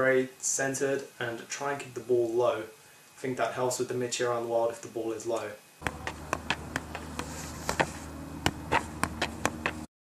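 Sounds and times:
steady low hum: 5.7s - 9.9s
football taps against feet: 5.8s - 9.9s.

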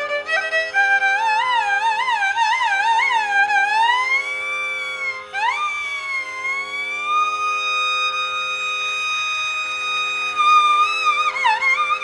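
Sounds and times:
tanpura drone: 0.0s - 12.0s.

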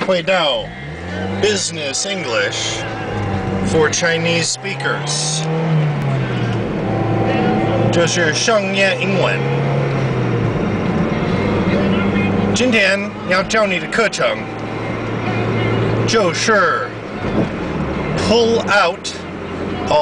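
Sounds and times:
car engine running: 0.0s - 20.0s.

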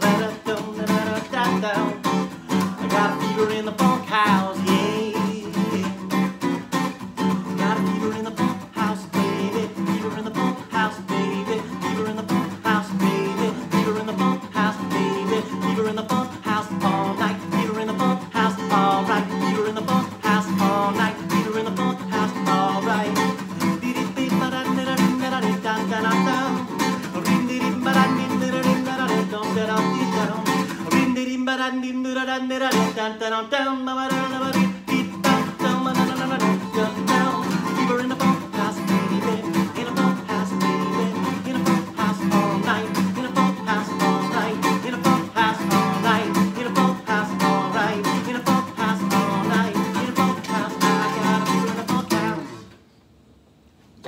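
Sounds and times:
acoustic guitar strummed: 0.0s - 52.8s.

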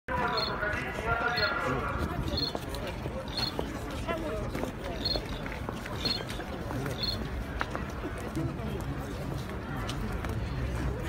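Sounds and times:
street crowd voices: 0.1s - 11.0s.

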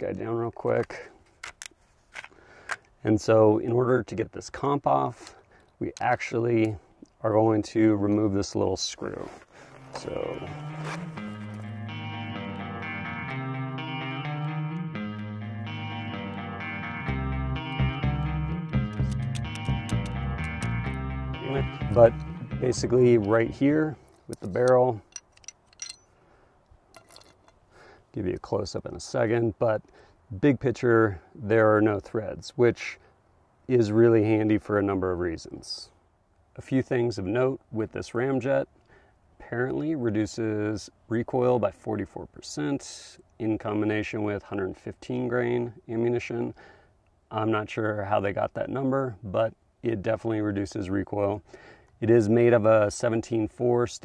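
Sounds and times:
pistol metallic clicks and slides: 0.8s - 2.9s, 18.9s - 20.8s, 24.0s - 26.1s, 26.9s - 27.6s
faint metal clicks and clinks: 24.0s - 26.2s, 26.9s - 27.6s.

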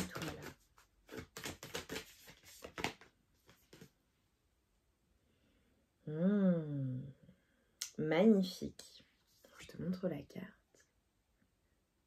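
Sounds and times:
cards being shuffled: 0.0s - 4.0s.

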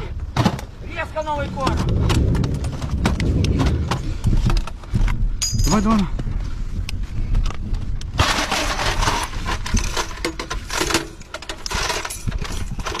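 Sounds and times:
cartridge belt clinking and rattling: 4.4s - 6.0s, 7.4s - 13.0s.

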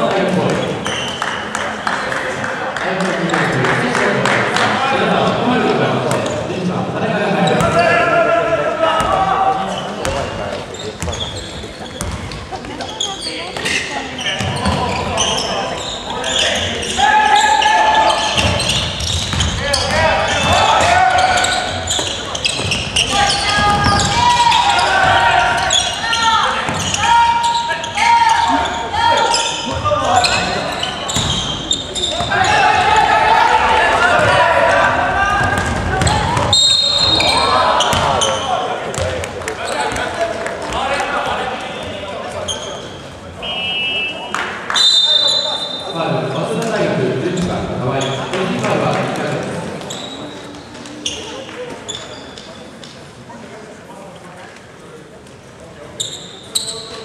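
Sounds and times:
players shouting and cheering: 2.0s - 10.5s, 14.4s - 42.6s.

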